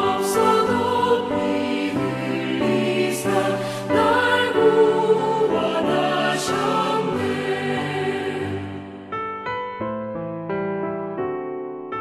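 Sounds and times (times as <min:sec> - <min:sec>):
choir singing a hymn: 0:00.0 - 0:09.1.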